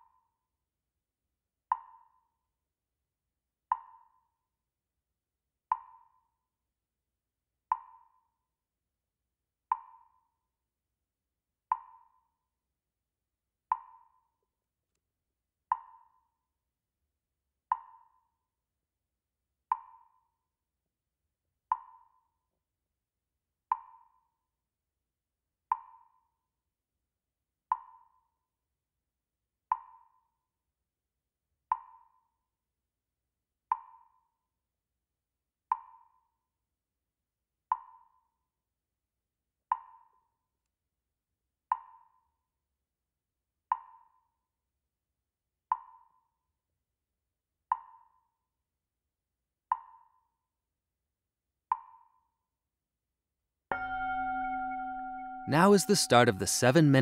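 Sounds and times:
hollow wood-block tick: 0:01.7 - 0:02.1.

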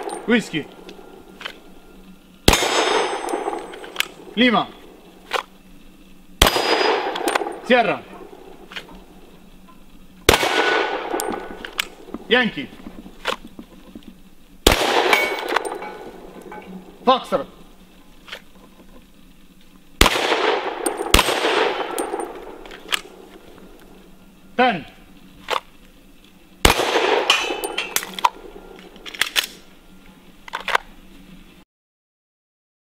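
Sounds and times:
pistol shot with echo: 0:00.0 - 0:01.2, 0:02.5 - 0:05.4, 0:06.4 - 0:09.0, 0:10.3 - 0:12.5, 0:14.6 - 0:17.0, 0:20.0 - 0:23.8, 0:26.6 - 0:29.0.

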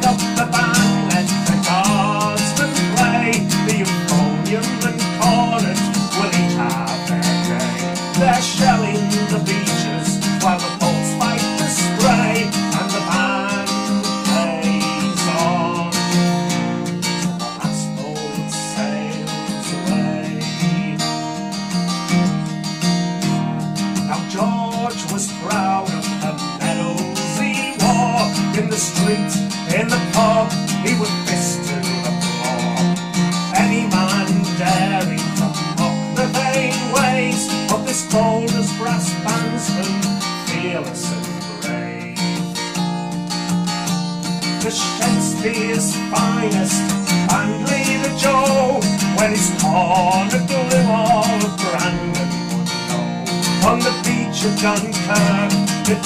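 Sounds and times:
acoustic guitar strummed and picked: 0:00.0 - 0:56.0.

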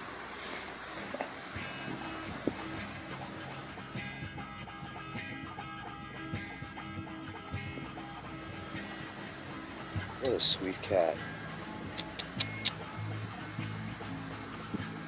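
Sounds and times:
acoustic guitar music: 0:00.8 - 0:15.0.

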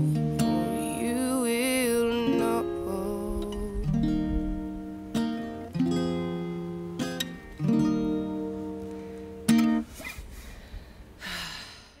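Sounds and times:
person sighing: 0:10.4 - 0:12.0.

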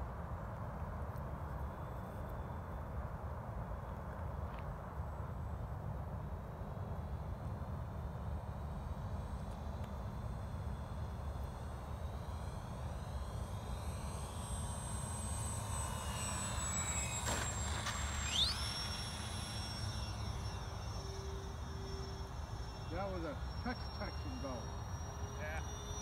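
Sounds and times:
model plane motors whining: 0:05.9 - 0:26.0.

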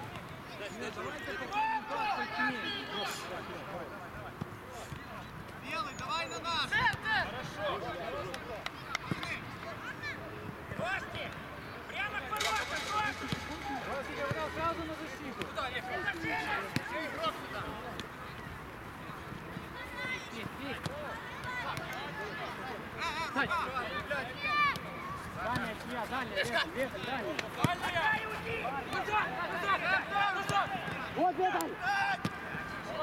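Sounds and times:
players calling and shouting: 0:00.1 - 0:33.0.

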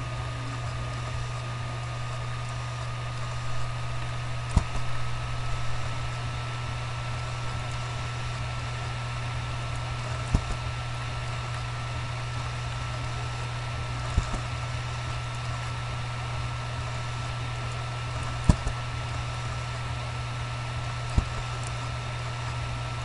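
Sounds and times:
high whine and hiss: 0:00.0 - 0:23.0
low electrical hum: 0:00.0 - 0:23.0.

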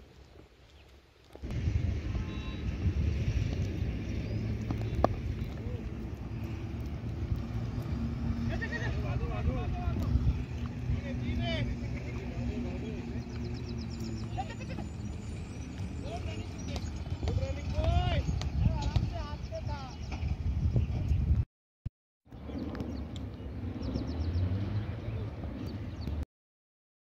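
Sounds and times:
wind rumble on microphone: 0:01.3 - 0:21.4, 0:22.3 - 0:26.2.

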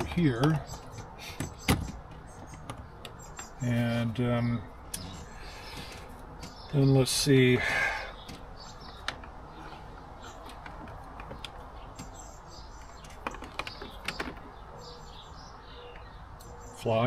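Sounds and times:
faint birdsong: 0:00.0 - 0:17.0
clicks and rustles of handling: 0:08.2 - 0:14.6.

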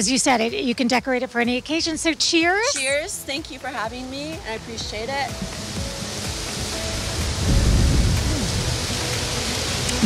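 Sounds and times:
outdoor hiss: 0:00.1 - 0:10.0
low microphone rumble: 0:07.2 - 0:09.0.

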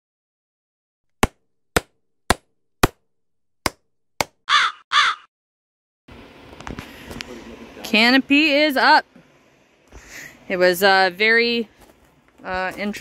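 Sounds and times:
crow cawing: 0:04.5 - 0:05.3.

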